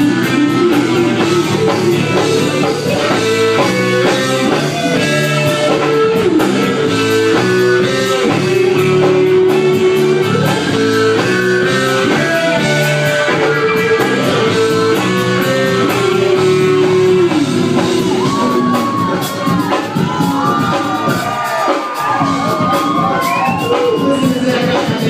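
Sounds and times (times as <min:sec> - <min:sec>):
sliding lead guitar notes: 0:00.0 - 0:24.8
rock band playing: 0:00.0 - 0:25.0.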